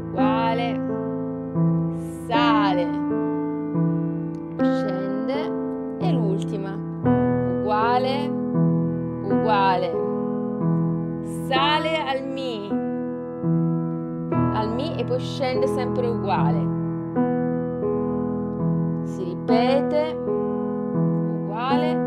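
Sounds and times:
gentle piano piece: 0.0s - 22.0s.

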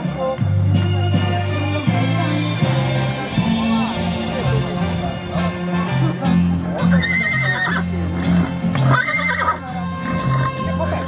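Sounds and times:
background music with bass: 0.0s - 11.0s
horse whinnying: 6.8s - 7.9s, 8.8s - 10.6s.

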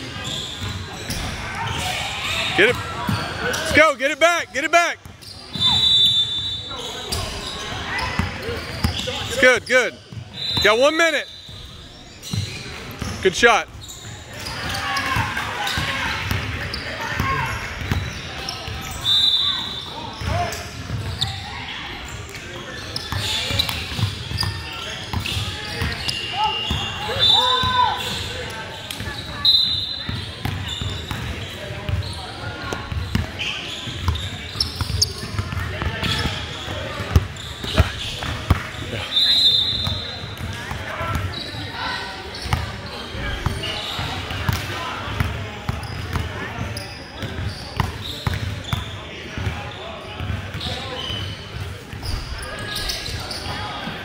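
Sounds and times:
sneakers squeaking: 0.0s - 54.0s
voices in a gym: 0.0s - 54.0s.

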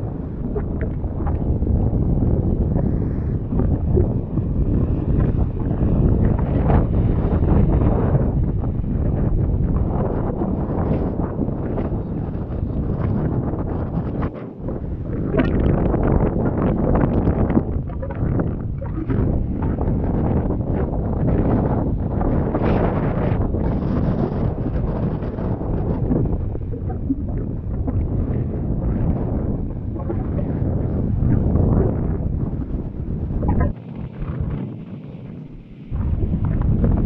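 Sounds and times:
wind blowing across microphone: 0.0s - 37.0s.

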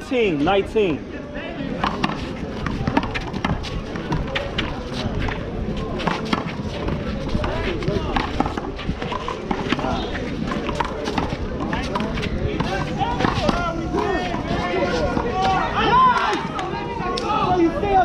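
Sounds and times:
background voices: 1.4s - 15.8s.

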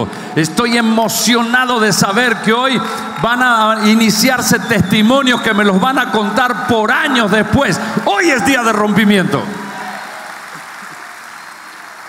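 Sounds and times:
congregation applauding: 0.0s - 12.0s.

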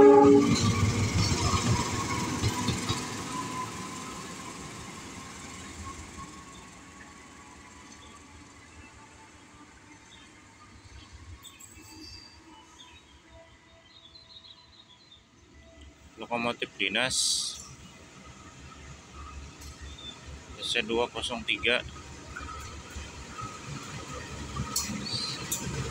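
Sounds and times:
locomotive engine and wheels passing: 0.0s - 25.9s.

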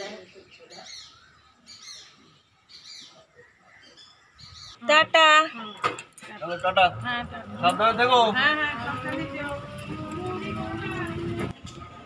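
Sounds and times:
bird chirping: 0.0s - 11.2s.

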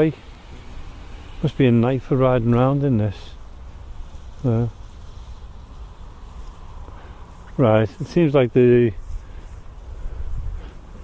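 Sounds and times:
distant road traffic rumble: 0.0s - 11.0s
outdoor hiss: 0.0s - 11.0s.

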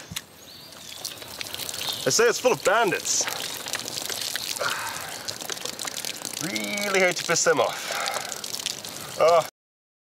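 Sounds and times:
liquid pouring and splashing: 0.3s - 9.5s.

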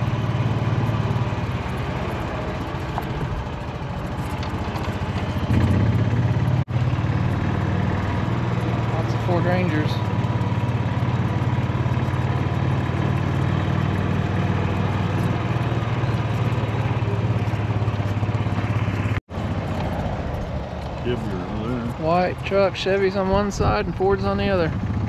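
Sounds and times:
small engine running: 0.0s - 25.0s.

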